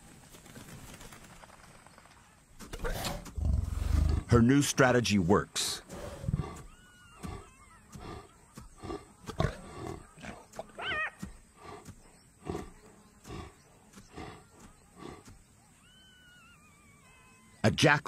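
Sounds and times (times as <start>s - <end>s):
lioness growling: 2.8s - 4.4s, 5.8s - 10.7s, 11.5s - 15.3s.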